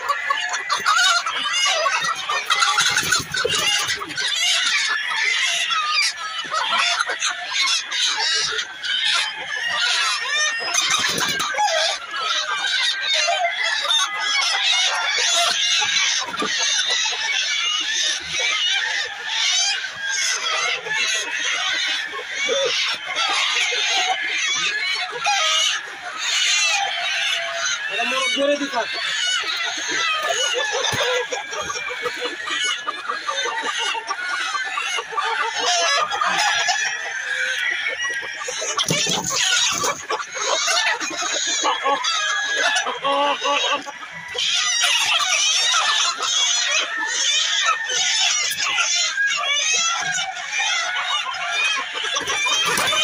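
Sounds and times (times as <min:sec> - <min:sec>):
chickens calling: 0:00.0 - 0:53.0.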